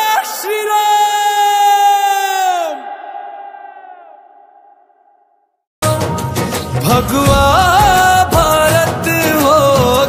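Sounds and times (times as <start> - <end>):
indian film song: 5.8 - 10.0.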